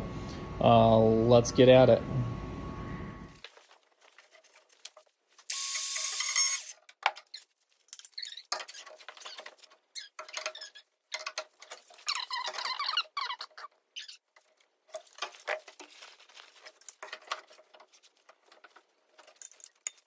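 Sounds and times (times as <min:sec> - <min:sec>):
short squeaks: 0:05.6 - 0:11.0, 0:11.6 - 0:14.3.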